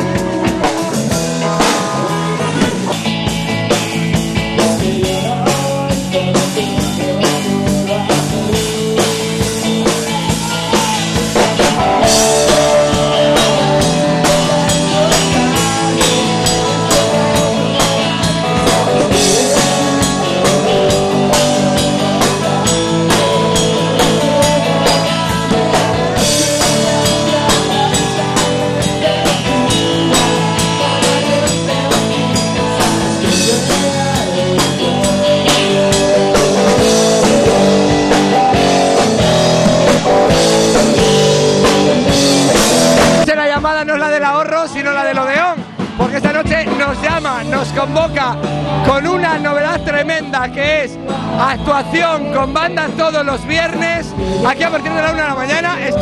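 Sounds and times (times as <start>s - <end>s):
man singing: 0.0s - 3.0s, 4.3s - 56.0s
rock band playing: 0.0s - 56.0s.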